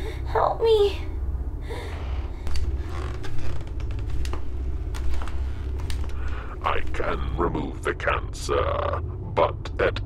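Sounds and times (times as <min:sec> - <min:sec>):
low steady drone: 0:00.0 - 0:10.0
light clicks and creaks: 0:01.9 - 0:06.4.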